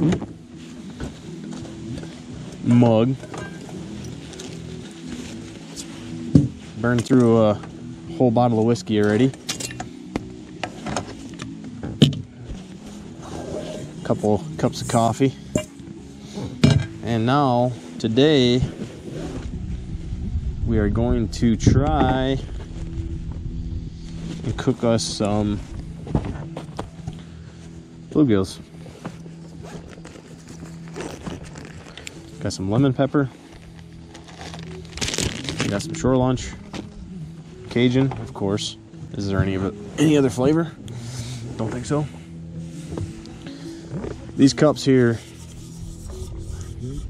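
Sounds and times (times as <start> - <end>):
fabric bag rustling: 0.3 - 6.9, 28.7 - 32.5, 33.3 - 36.0.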